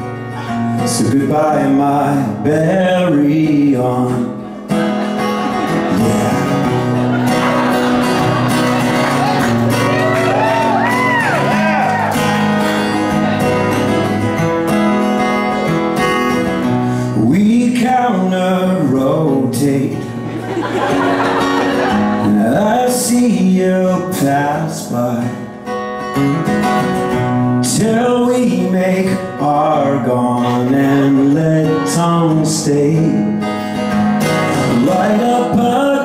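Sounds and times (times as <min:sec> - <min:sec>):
man singing: 0:00.0 - 0:04.9, 0:05.5 - 0:07.2, 0:17.0 - 0:20.2, 0:22.2 - 0:25.6, 0:27.5 - 0:33.5, 0:34.2 - 0:36.0
acoustic guitar strumming: 0:00.0 - 0:36.0.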